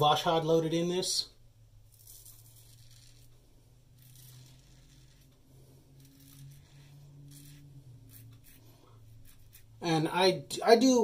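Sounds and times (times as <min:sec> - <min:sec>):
low steady hum: 0:00.0 - 0:11.0
razor scraping stubble: 0:01.9 - 0:09.8.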